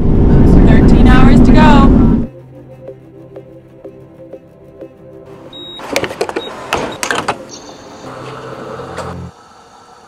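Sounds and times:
road and wind noise: 0.0 - 2.3.

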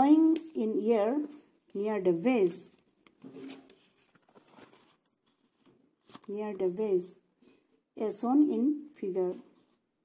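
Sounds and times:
paper rustling: 2.8 - 6.8.

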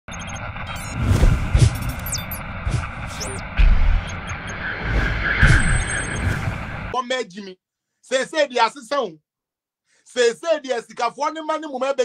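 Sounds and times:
short high electronic beeps: 0.1 - 2.5, 3.1 - 6.9
whooshes: 0.6 - 7.0
deep bass hits: 1.2 - 4.4
sharp clicks: 1.6 - 2.4.

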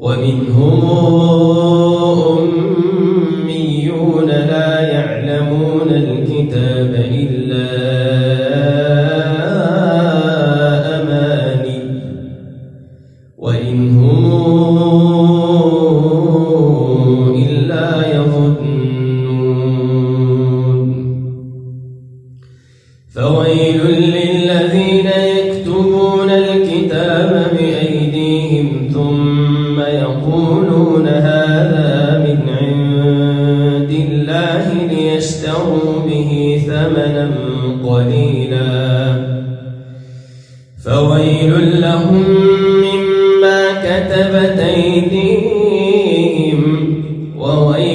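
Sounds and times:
man chanting melodically: 0.0 - 12.8, 13.4 - 22.1, 23.1 - 39.9, 40.7 - 47.9.

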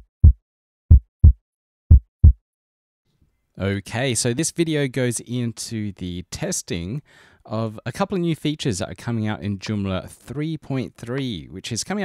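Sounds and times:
heartbeat double thumps: 0.0 - 2.4.

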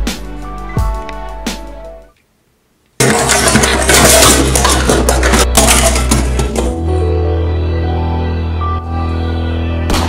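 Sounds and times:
music: 0.0 - 2.2, 3.0 - 10.0
crackling clattering debris: 3.0 - 6.8.

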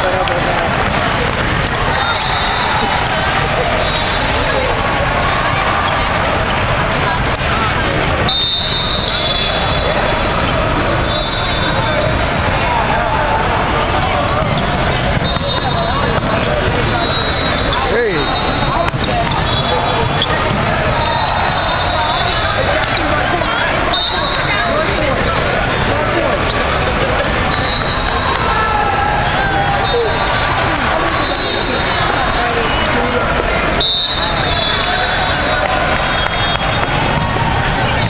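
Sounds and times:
chatter of voices: 0.0 - 38.0
sneaker squeaks: 1.8 - 3.2, 8.3 - 12.3, 14.1 - 23.3, 23.9 - 26.8, 27.4 - 28.4
high whistle blasts: 1.9 - 2.9, 8.3 - 9.9, 11.0 - 12.0, 16.8 - 18.8, 21.0 - 22.4, 31.2 - 32.2, 33.8 - 36.8.

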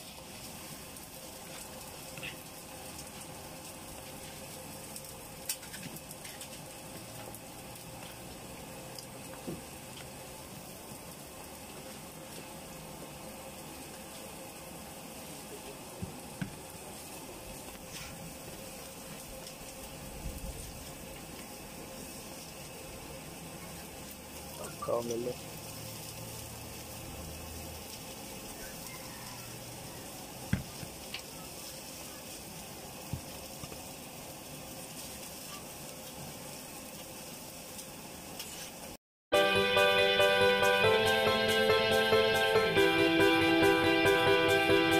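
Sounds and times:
food sizzling on griddle: 0.0 - 44.9.

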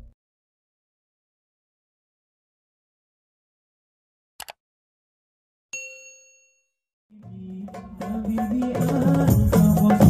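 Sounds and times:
bell-like ding: 5.8 - 6.8.

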